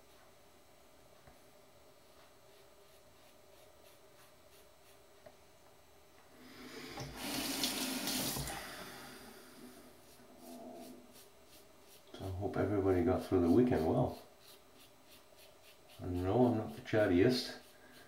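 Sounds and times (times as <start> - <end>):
tap water running into sink: 7.0 - 8.6.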